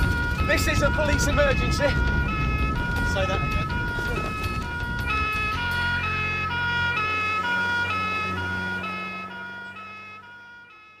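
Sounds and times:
two-tone police siren: 0:00.0 - 0:11.0
car engine: 0:01.6 - 0:10.9.

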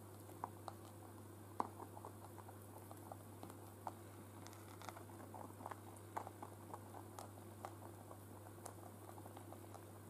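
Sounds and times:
rabbits chewing hay: 0:00.0 - 0:10.0.

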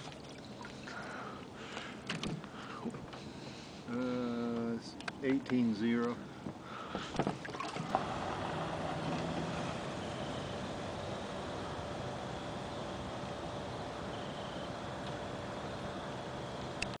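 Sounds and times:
boat engine running: 0:07.2 - 0:16.9.

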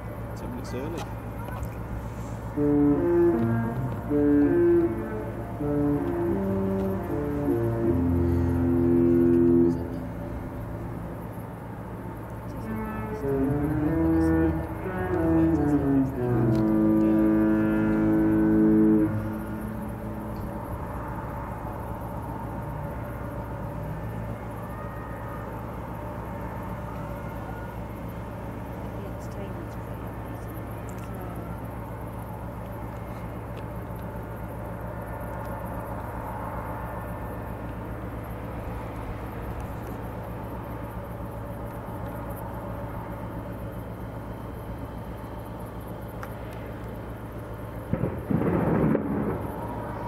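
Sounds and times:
ship horn playing a tune: 0:01.9 - 0:32.4.

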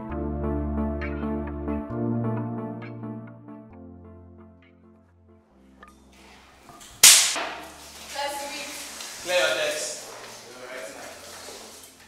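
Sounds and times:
sharp crack: 0:07.0 - 0:07.8.

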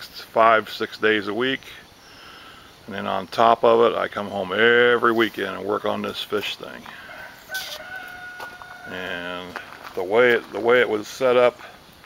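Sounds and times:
rooster crowing: 0:06.9 - 0:09.2.

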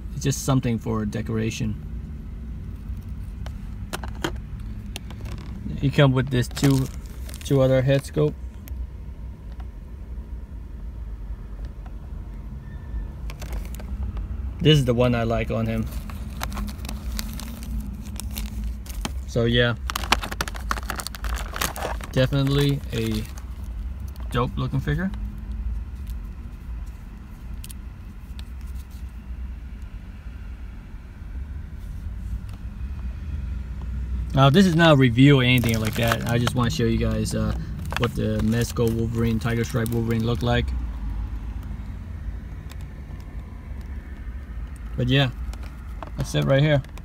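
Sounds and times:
low steady rumble: 0:00.0 - 0:47.0
plastic packaging crackling: 0:02.8 - 0:08.2, 0:13.2 - 0:14.3, 0:15.2 - 0:26.3, 0:34.3 - 0:41.8, 0:42.5 - 0:47.0.

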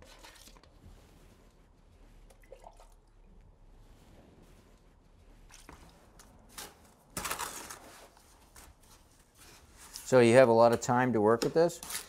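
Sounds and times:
gritty scraping and squishing in bucket: 0:00.0 - 0:01.6.

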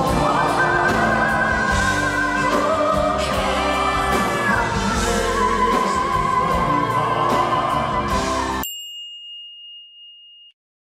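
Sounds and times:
bell-like ding: 0:08.6 - 0:10.6.

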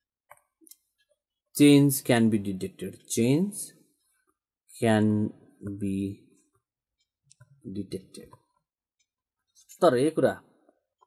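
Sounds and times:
man talking: 0:01.6 - 0:03.9, 0:04.7 - 0:06.4, 0:07.6 - 0:08.4, 0:09.7 - 0:10.6.

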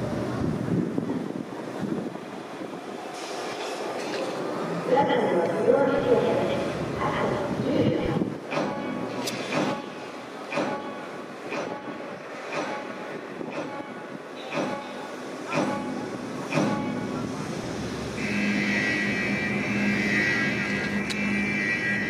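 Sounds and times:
steady horn-like tone: 0:18.2 - 0:22.0.

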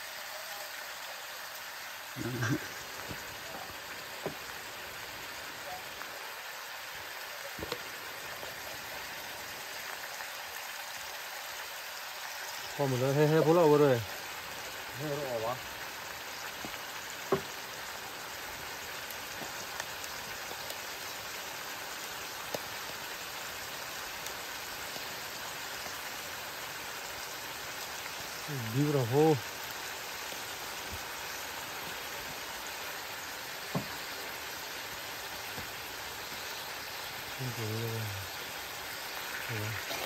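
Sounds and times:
meat sizzling in oil: 0:00.0 - 0:40.0.

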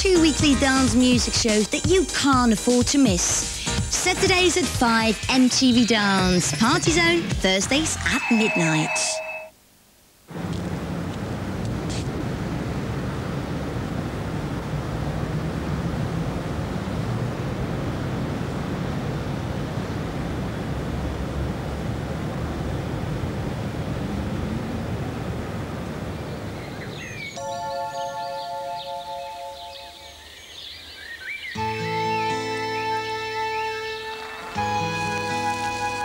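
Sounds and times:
music with held notes: 0:27.4 - 0:30.2, 0:31.6 - 0:36.0.

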